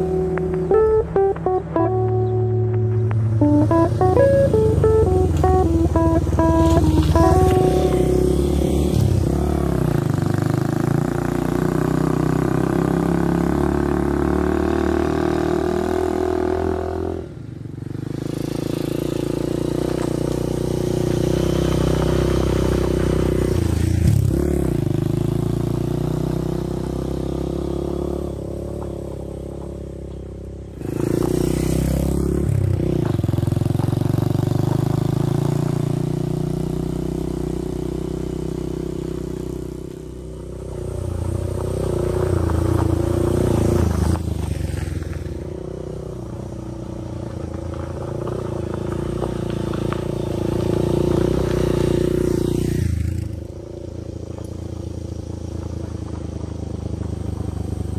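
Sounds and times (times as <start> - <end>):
motorcycle engine running: 0.0 - 57.9.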